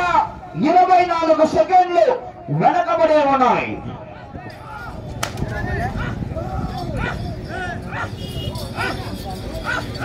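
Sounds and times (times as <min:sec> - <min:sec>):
people shouting calls: 0:00.0 - 0:10.0
whip crack: 0:05.2 - 0:05.5.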